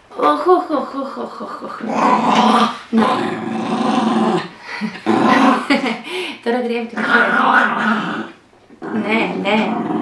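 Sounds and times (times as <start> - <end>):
small dog growling: 1.8 - 5.8.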